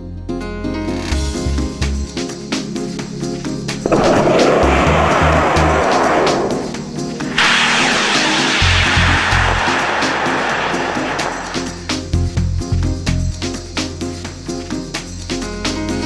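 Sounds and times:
background music with beat: 1.1 - 7.4, 10.8 - 16.0
model rocket motor hissing: 3.9 - 11.8.

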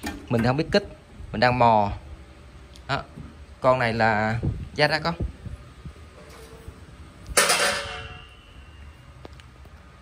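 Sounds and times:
metallic clang with ringing: 7.4 - 8.8.

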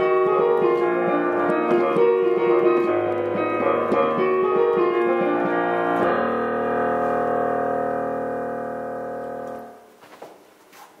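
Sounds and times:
digital piano chord: 0.0 - 9.9.

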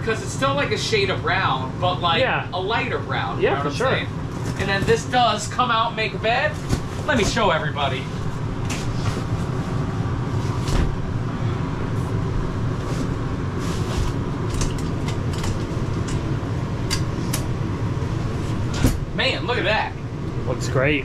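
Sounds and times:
low hum: 0.0 - 21.0.

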